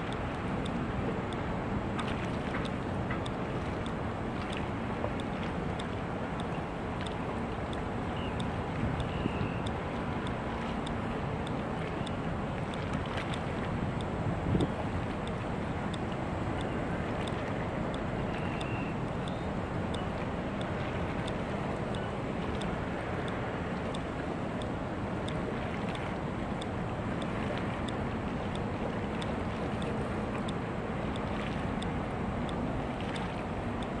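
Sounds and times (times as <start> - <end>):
ship engines humming: 0.0 - 34.0
wind on microphone: 8.6 - 9.7, 13.8 - 15.0
faint regular ticking: 18.6 - 22.0.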